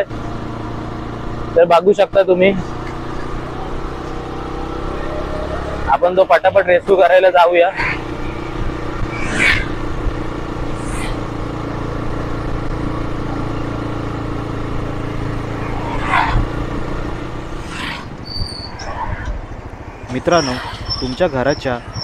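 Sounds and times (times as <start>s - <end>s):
road and wind noise: 0.0s - 22.0s
motorbike engine running: 7.7s - 22.0s.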